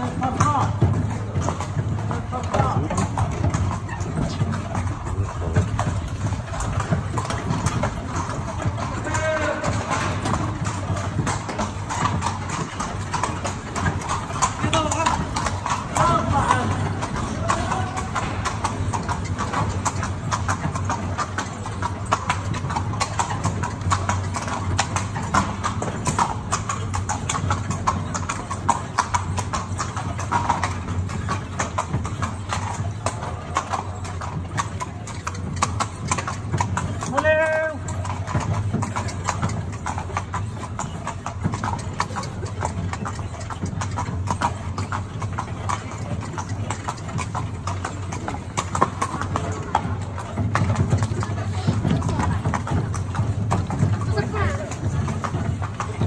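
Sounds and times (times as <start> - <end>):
carriage wheels rolling: 0.0 - 56.0
horse hooves on stone: 0.0 - 56.0.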